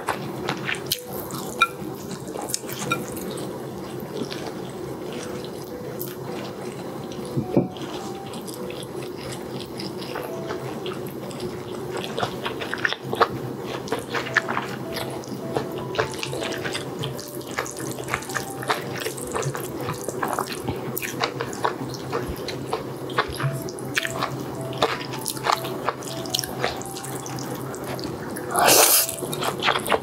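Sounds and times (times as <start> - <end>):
person chewing noodles wetly: 0.0 - 30.0.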